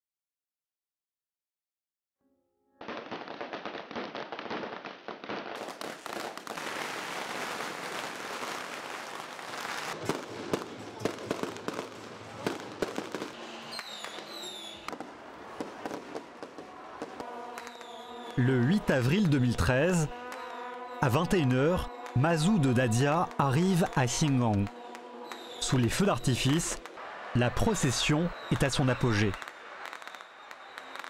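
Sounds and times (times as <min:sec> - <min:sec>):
firecrackers crackling: 0:02.8 - 0:18.4, 0:20.1 - 0:21.0, 0:23.8 - 0:25.8, 0:26.4 - 0:31.0
falling firework whistles: 0:12.5 - 0:15.0, 0:17.0 - 0:18.4, 0:20.3 - 0:21.0, 0:25.2 - 0:25.6, 0:29.3 - 0:31.0.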